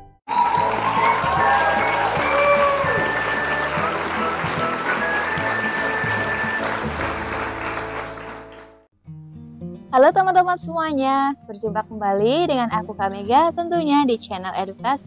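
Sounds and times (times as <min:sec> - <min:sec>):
intro music: 0:00.3 - 0:08.8
audience applauding: 0:00.3 - 0:08.9.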